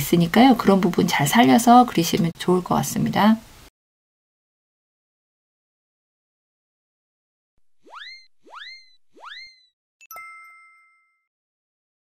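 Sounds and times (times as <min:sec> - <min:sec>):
bright ding: 0:10.0 - 0:11.3.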